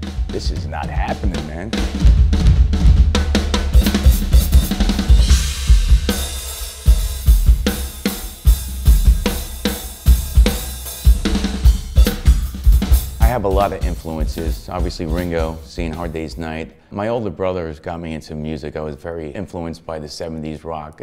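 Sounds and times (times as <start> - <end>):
bass drum kicks: 0.0 - 16.4
cymbal crashes: 3.5 - 13.2.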